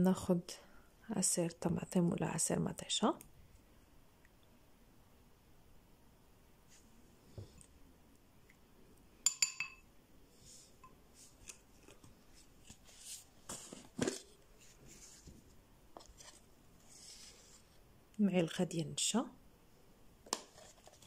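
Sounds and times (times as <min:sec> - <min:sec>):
spoon tapping and rubbing: 0:09.2 - 0:09.8
dishware clink: 0:09.3 - 0:09.8.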